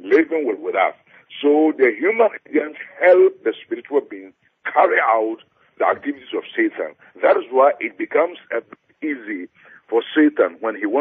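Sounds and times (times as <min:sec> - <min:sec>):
man talking: 0:00.0 - 0:11.0.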